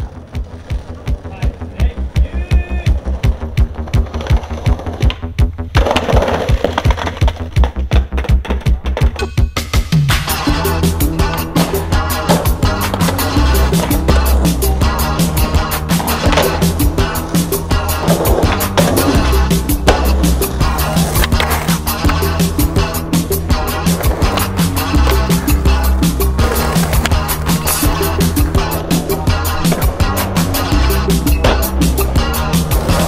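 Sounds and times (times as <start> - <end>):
skateboard clacking: 0.0 - 9.6, 10.3 - 33.0
hip-hop backing track: 0.0 - 33.0
skateboard wheels rolling on pavement: 0.0 - 33.0.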